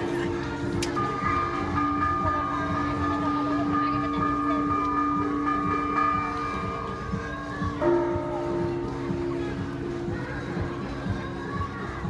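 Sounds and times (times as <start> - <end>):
church bells ringing: 0.3 - 11.4.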